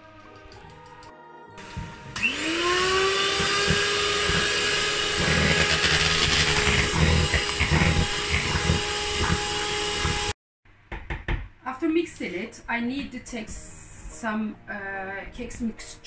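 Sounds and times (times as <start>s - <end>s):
electric hand mixer whining: 1.6s - 10.4s.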